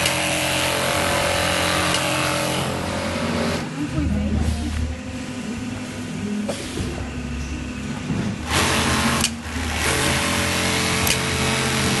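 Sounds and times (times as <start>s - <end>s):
sewing machine running fast: 0.0s - 3.7s, 8.4s - 12.0s
low motor hum: 0.0s - 12.0s.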